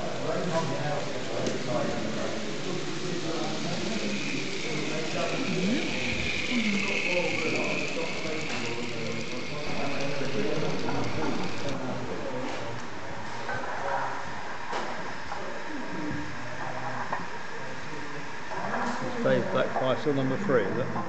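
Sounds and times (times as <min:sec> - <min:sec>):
model train motor whining: 0:00.0 - 0:11.8
people chatting: 0:00.0 - 0:13.9, 0:14.8 - 0:21.0.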